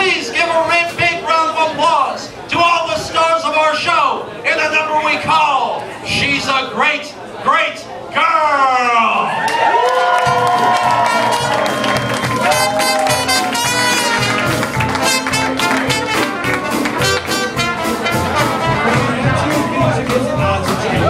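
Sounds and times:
jazz band playing: 10.2s - 21.0s
brass horns playing melody: 11.1s - 19.6s.

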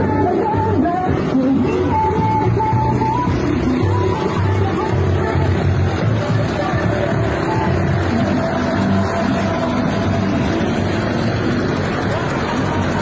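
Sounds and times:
faint music: 0.0s - 13.0s
vehicle engines and road noise: 0.0s - 13.0s.

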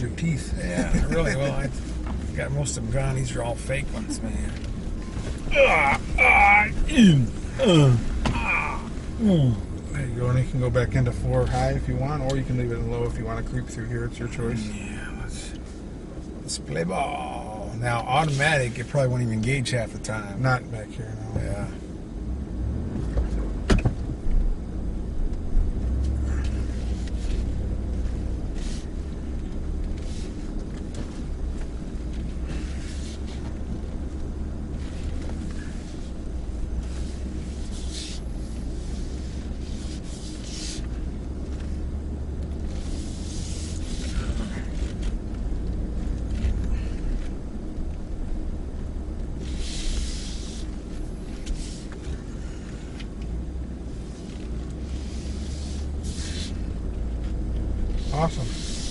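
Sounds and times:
low engine rumble: 0.0s - 58.9s
hissing or scraping noises: 25.8s - 48.2s, 49.2s - 58.9s.

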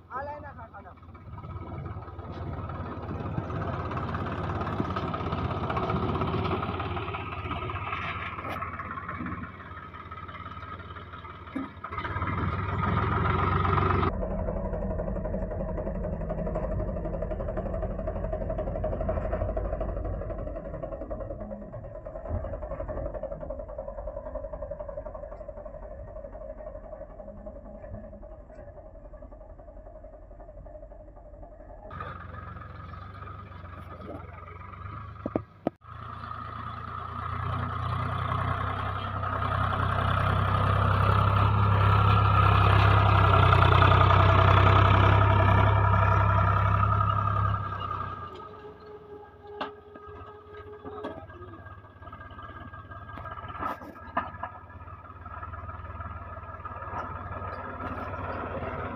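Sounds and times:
voice: 0.0s - 1.7s, 31.8s - 35.4s, 50.8s - 51.8s
tractor diesel engine running: 0.0s - 58.9s.

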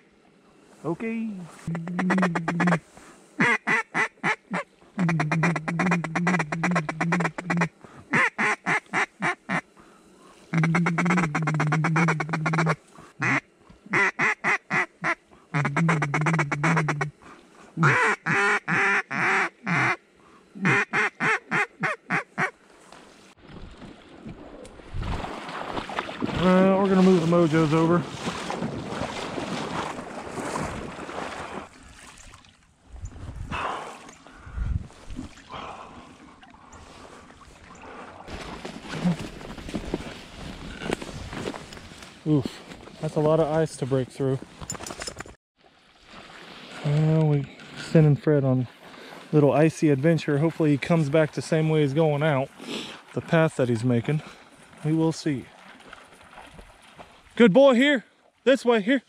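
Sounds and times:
rustling hiss: 0.0s - 1.8s, 2.4s - 3.5s, 7.7s - 14.0s
duck call quacking: 1.7s - 2.8s, 3.4s - 9.6s, 10.5s - 17.1s, 17.8s - 20.0s, 20.6s - 22.5s.

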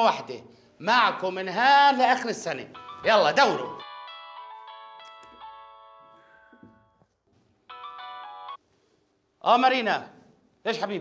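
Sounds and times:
phone ringtone melody: 2.7s - 7.0s, 7.7s - 8.6s.

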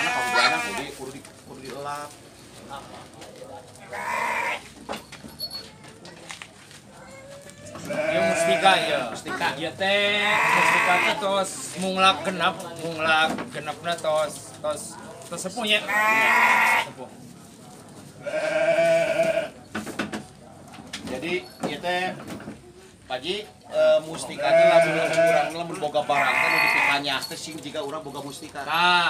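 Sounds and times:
sheep bleating: 0.0s - 0.9s, 3.9s - 4.6s, 7.7s - 9.1s, 10.0s - 11.3s, 15.8s - 17.0s, 18.2s - 19.6s, 24.3s - 27.0s.

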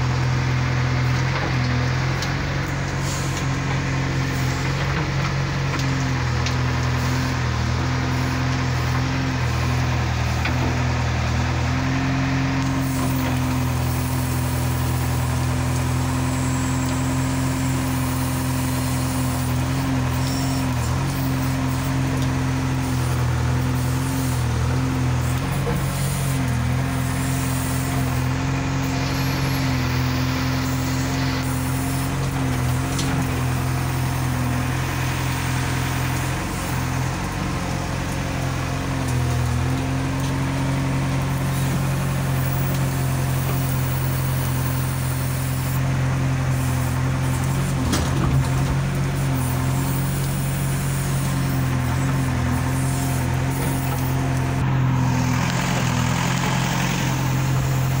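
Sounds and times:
diesel engine running: 0.0s - 58.0s.

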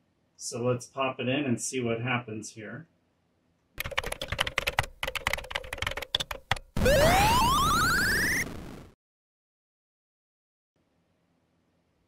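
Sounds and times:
rapid keyboard typing: 3.8s - 6.8s
rising electronic tone: 6.8s - 8.9s.

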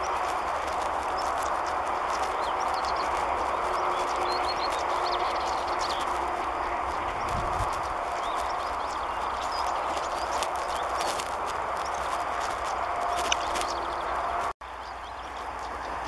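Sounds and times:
bird sharp clicking calls: 0.0s - 14.5s
steady background rush: 0.0s - 14.5s.

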